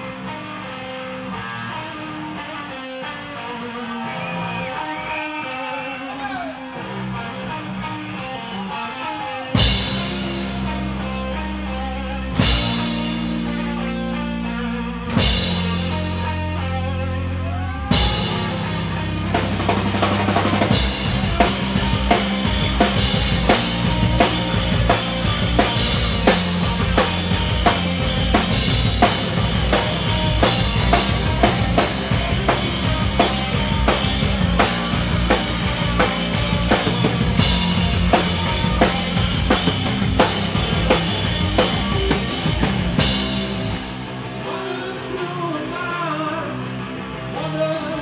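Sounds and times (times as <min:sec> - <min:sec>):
rock band playing: 0:00.0 - 0:48.0
drum kit beating: 0:09.6 - 0:47.5.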